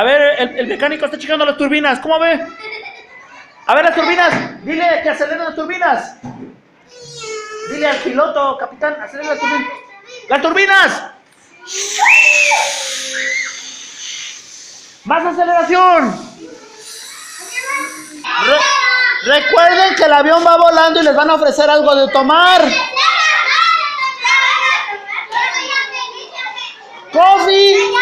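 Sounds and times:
young children chattering: 2.3 - 4.6, 9.1 - 10.3, 11.4 - 20.6, 22.0 - 28.0
children imitating jet whoosh: 11.6 - 19.0
child squealing: 11.7 - 14.4, 16.4 - 18.3.

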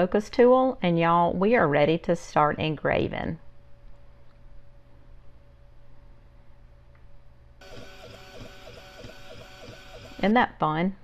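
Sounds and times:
stepper motors whirring: 7.6 - 10.4.

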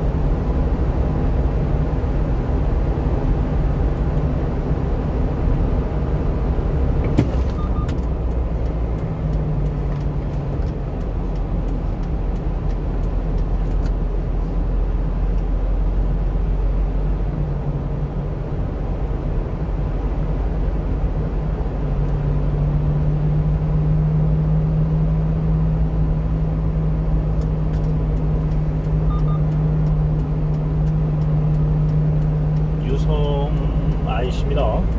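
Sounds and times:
truck engine and road noise drone: 0.0 - 34.9
low hum: 15.0 - 34.9
faint regular ticking: 27.4 - 34.9
man's voice: 32.8 - 34.9.

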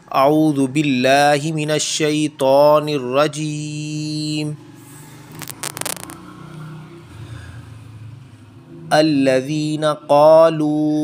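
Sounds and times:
hand scraping paper page: 5.3 - 6.2.

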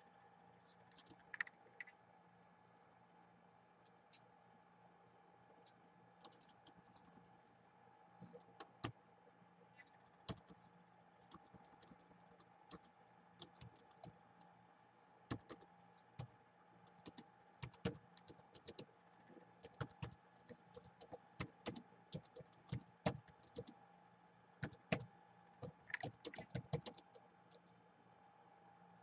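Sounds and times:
faint steady hum: 0.0 - 29.0
laptop keyboard typing: 0.8 - 1.9, 6.2 - 7.2, 8.2 - 9.0, 10.0 - 14.5, 15.3 - 23.8, 24.6 - 27.7.

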